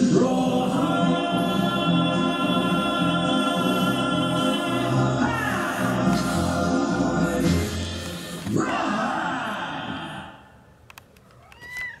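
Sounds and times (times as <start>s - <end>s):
song ending: 0.0s - 8.6s
cat meowing: 11.4s - 12.0s.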